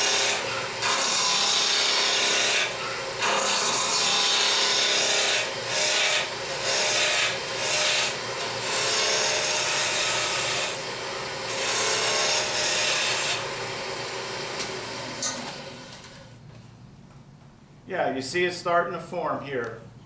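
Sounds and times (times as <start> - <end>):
lathe tool cutting wood: 0.0 - 16.2.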